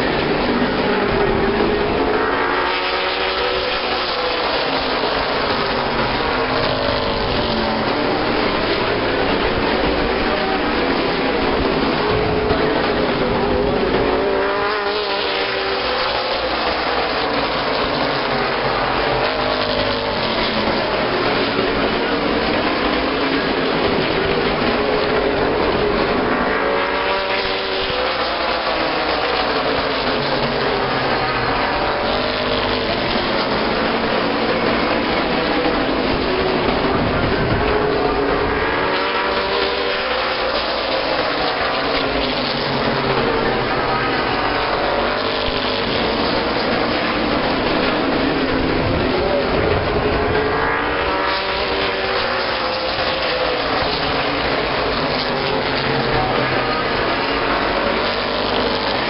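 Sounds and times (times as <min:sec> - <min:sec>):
race car engines passing: 0:00.0 - 0:59.0.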